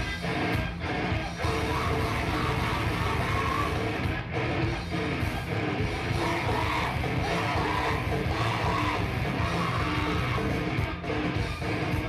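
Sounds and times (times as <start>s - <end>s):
hardcore band playing live: 0.0s - 12.0s.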